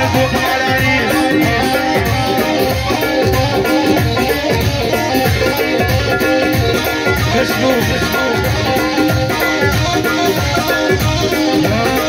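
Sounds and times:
plucked-string melody: 0.0 - 12.0
steady drum beat: 0.0 - 12.0.

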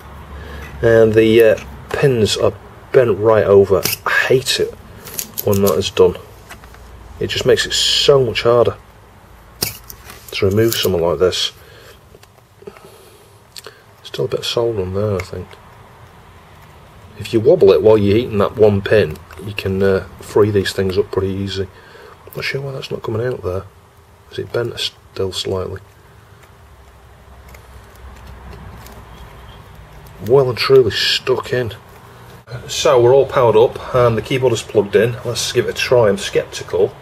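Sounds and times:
background hiss: 0.0 - 37.0
low room noise: 0.0 - 37.0.

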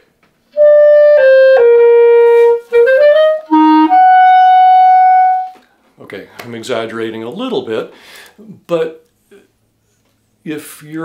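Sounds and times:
solo clarinet playing: 0.5 - 5.6.

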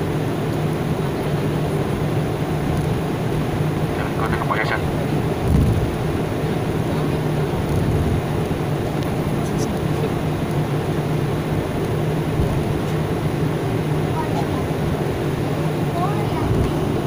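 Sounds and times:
jet engines from cabin: 0.0 - 17.0.

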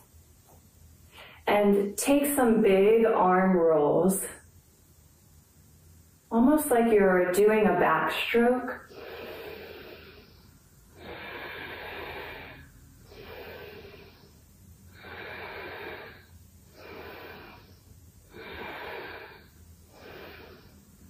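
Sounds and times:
woman breathing deeply: 1.1 - 1.4, 8.8 - 21.0.

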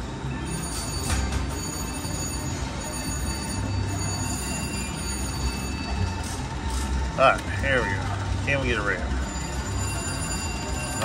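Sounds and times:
slot machine bell tones: 0.0 - 11.0.

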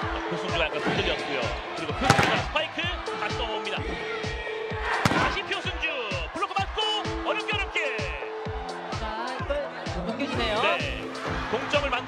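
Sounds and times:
steady thumping beat: 0.0 - 11.9
held cheer tones: 0.0 - 12.0
sharp ball strike: 2.0 - 2.5, 5.0 - 5.5.

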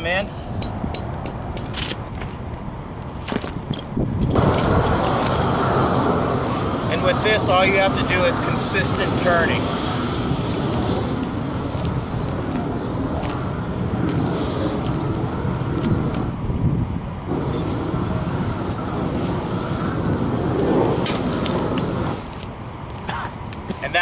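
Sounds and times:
city traffic: 0.0 - 24.0
wind: 0.0 - 24.0.

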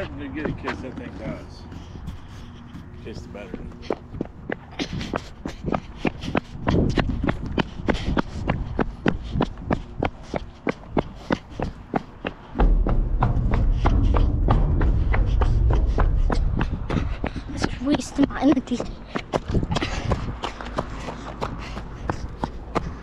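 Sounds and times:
running footsteps: 0.0 - 23.0
wind buffeting microphone: 0.0 - 23.0.

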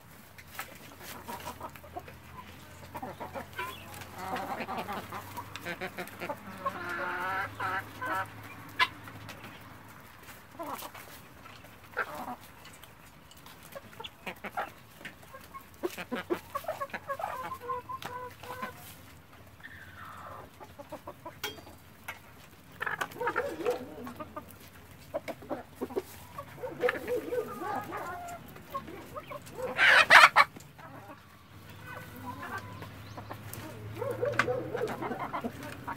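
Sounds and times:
beaks pecking at ground: 0.0 - 35.9
chickens clucking: 0.0 - 35.9
guineafowl calls: 0.9 - 9.6, 13.8 - 18.9, 19.6 - 21.4, 22.8 - 24.5, 25.1 - 35.9.

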